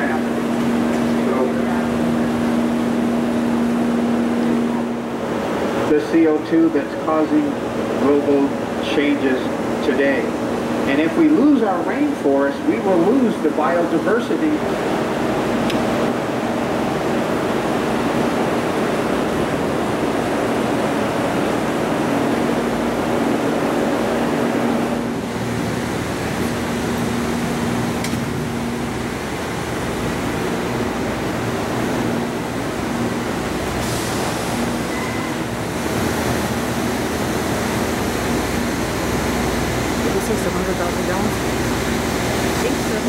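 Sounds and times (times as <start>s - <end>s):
rushing water: 0.0s - 43.0s
ventilation machinery drone: 0.0s - 43.0s.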